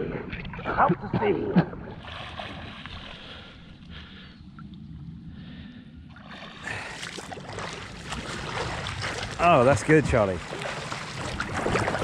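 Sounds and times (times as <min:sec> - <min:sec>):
sea water lapping and splashing: 0:01.8 - 0:04.3, 0:06.1 - 0:12.0
swimmer's strokes splashing: 0:06.2 - 0:12.0.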